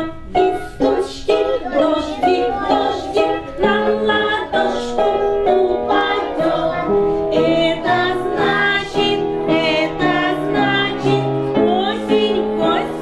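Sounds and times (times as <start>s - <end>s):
children singing: 0.0s - 13.0s.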